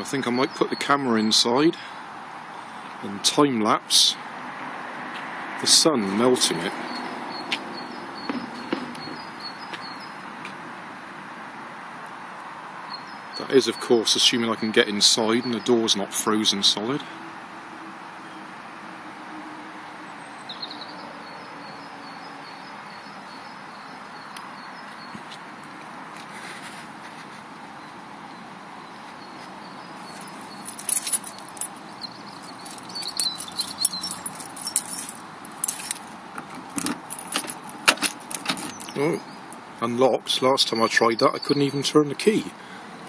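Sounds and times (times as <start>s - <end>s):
outdoor background hiss: 0.0s - 43.0s
car keys jangling: 30.2s - 39.6s.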